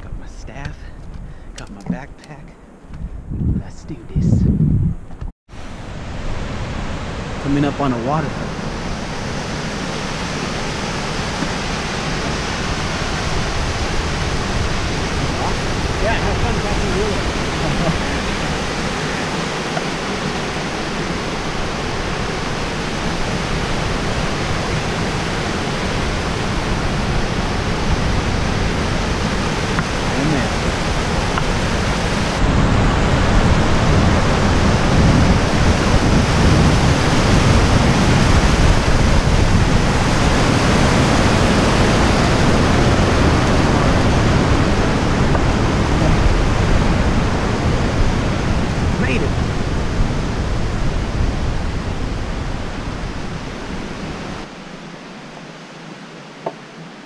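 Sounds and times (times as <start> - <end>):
water rushing over rocks: 5.5 - 57.0.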